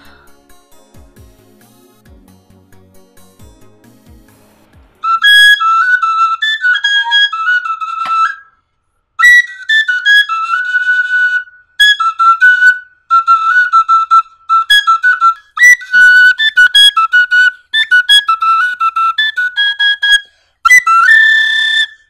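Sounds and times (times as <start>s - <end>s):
wooden flute melody: 5.0s - 22.0s.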